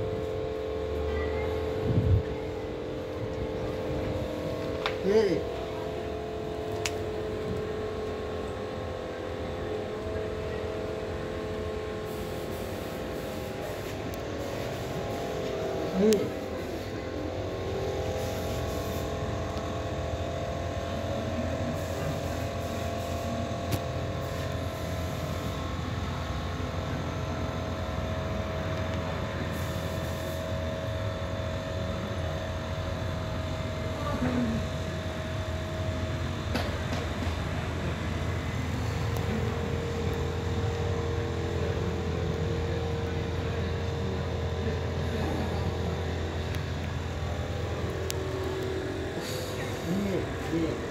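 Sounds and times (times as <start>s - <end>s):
engine humming: 0.0s - 29.0s, 32.4s - 50.9s.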